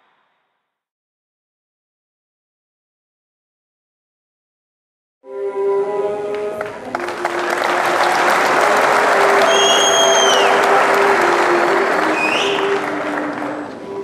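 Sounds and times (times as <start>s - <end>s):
background music: 5.2s - 14.0s
audience applauding: 6.2s - 14.0s
shrill whistles from crowd: 7.2s - 13.5s.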